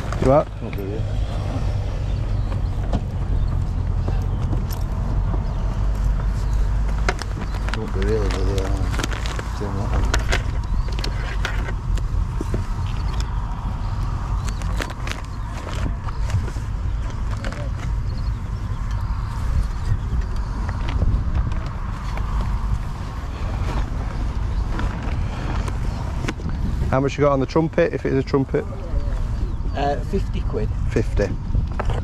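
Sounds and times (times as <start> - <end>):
wind rumble on microphone: 0.0 - 32.0.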